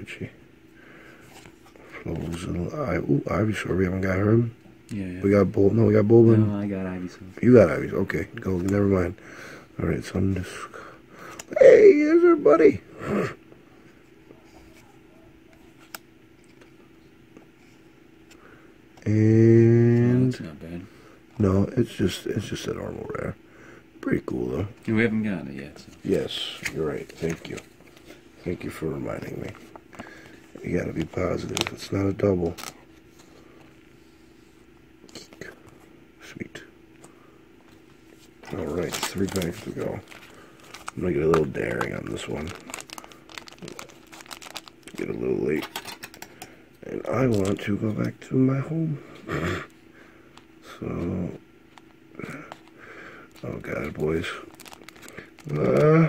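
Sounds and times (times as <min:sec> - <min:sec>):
faint steady hum: 0:00.0 - 0:56.0
trading cards handled: 0:25.8 - 0:33.8, 0:37.0 - 0:48.2, 0:51.7 - 0:55.9
foil wrapper crinkling and tearing: 0:38.4 - 0:46.4, 0:47.0 - 0:47.8, 0:53.3 - 0:56.0.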